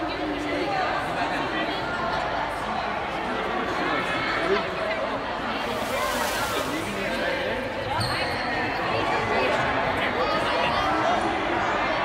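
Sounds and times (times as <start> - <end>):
echoing crowd voices: 0.0 - 12.0.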